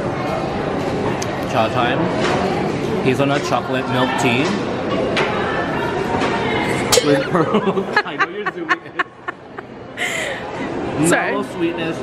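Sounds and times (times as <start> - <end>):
voices and chuckling: 6.8 - 10.8.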